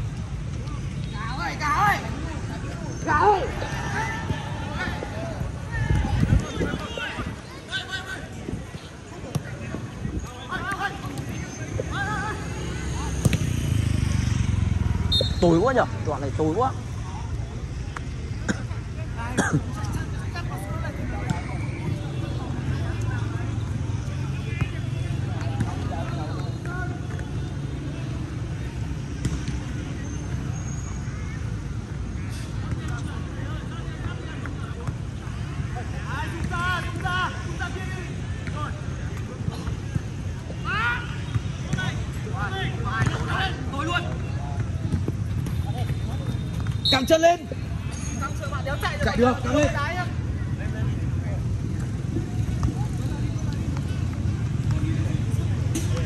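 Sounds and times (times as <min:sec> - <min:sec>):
footballers shouting: 0:00.6 - 0:14.0, 0:31.1 - 0:56.0.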